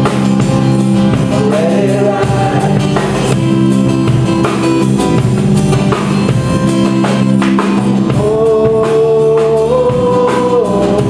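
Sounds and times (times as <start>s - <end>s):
drum kit beat: 0.0s - 11.0s
live band playing: 0.0s - 11.0s
strummed acoustic guitars: 0.0s - 11.0s.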